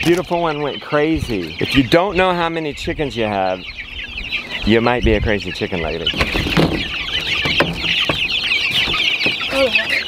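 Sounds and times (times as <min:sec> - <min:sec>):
chicks peeping: 0:00.0 - 0:10.0
light wooden knocks: 0:06.1 - 0:09.5.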